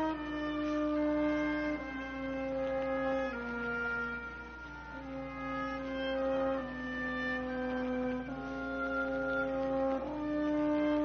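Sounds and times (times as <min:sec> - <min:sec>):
orchestra playing a hymn: 0:00.0 - 0:11.0.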